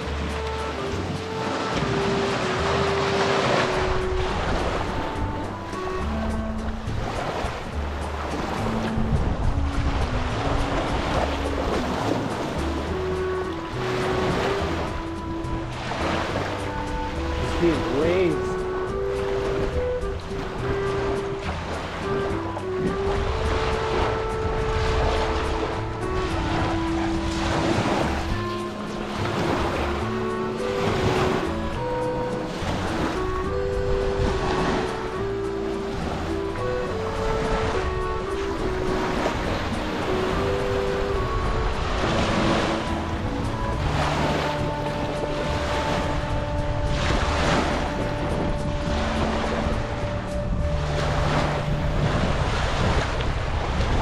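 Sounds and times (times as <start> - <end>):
background music with held notes: 0.0 - 54.0
small waves washing onto shore: 0.0 - 54.0.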